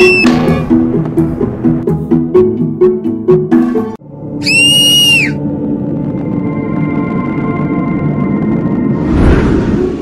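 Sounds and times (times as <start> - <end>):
whistle-like cartoon sound effect: 0.0 - 0.3, 4.4 - 5.4
low ambient music: 0.0 - 10.0.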